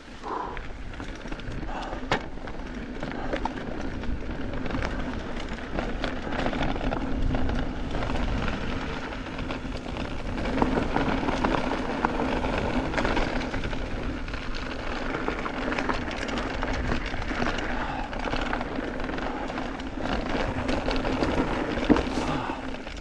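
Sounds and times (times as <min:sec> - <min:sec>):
tyre noise on dirt: 0:00.0 - 0:23.0
wind rumble on microphone: 0:00.0 - 0:23.0
bike rattling and knocking: 0:00.1 - 0:23.0.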